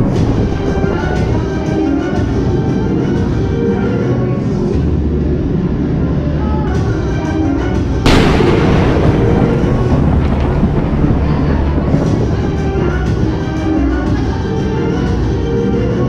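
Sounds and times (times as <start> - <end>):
dramatic orchestral music: 0.0 - 16.0
low steady rumble: 8.0 - 14.2
loud boom: 8.1 - 13.6.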